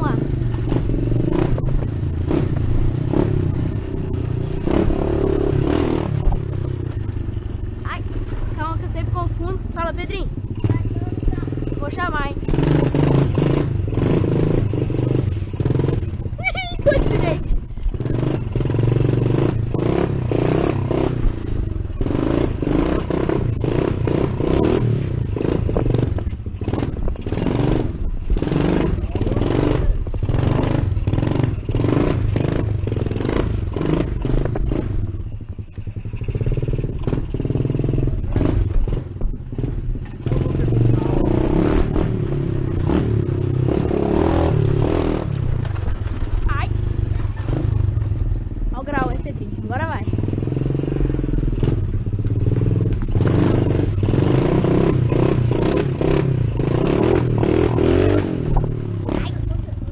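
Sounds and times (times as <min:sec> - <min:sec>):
dirt bike engine running: 0:00.0 - 0:59.9.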